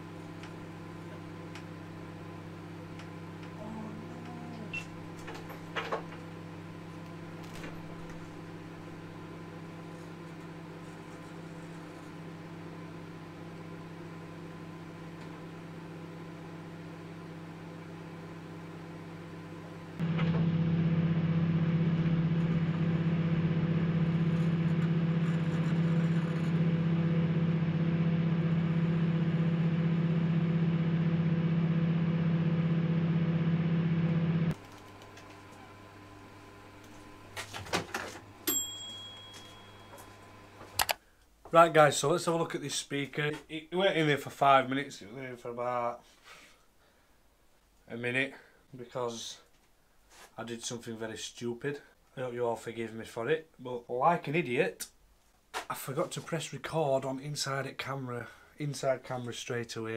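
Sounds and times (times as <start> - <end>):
microwave oven humming: 0.0 - 41.0.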